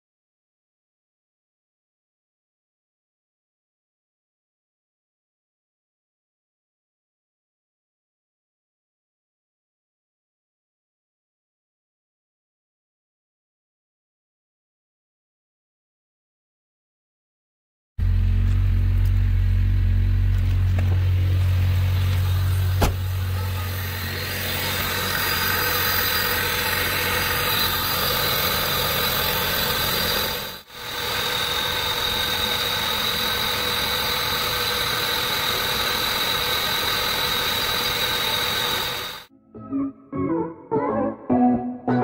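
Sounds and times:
car engine idling: 18.0 - 39.3.

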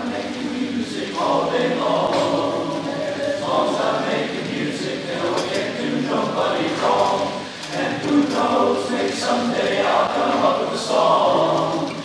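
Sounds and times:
male chorus singing a cappella: 0.0 - 12.0.

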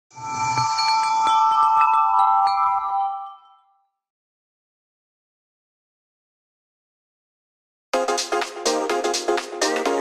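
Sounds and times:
bright chime tones ringing: 0.2 - 4.0.

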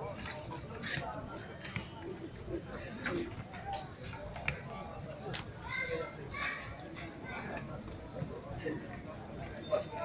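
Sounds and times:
outdoor background noise: 0.0 - 10.0
people talking and calling out: 0.0 - 10.0.

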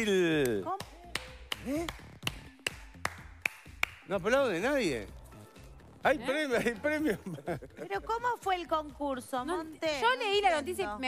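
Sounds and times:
man clapping hands slowly: 0.4 - 4.1.

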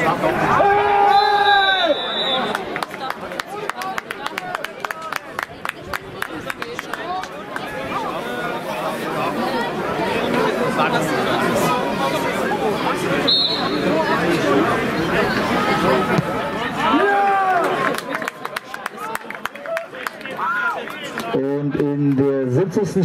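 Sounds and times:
crowd babble: 0.0 - 23.0
loud shouts: 0.4 - 2.6, 15.9 - 17.9
high whistle note: 13.3 - 13.8.

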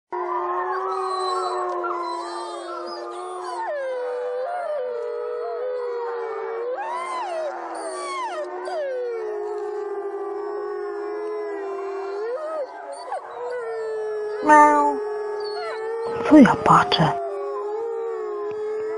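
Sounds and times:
chorus of howls: 0.1 - 18.9.

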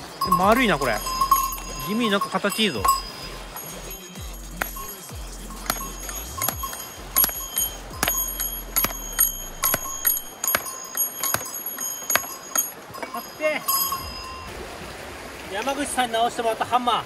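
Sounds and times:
hammer striking stones: 4.5 - 5.0, 5.6 - 13.1.

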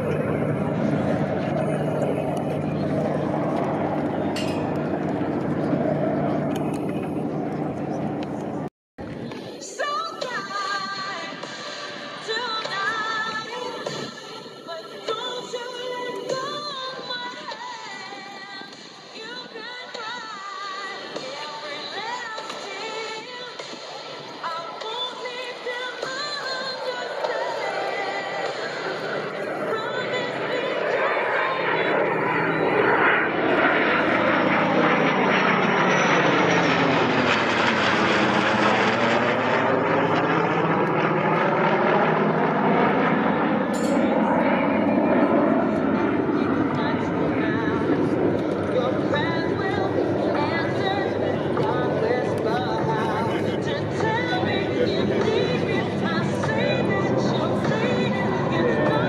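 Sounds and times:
jet aircraft engines passing overhead: 0.0 - 59.0.

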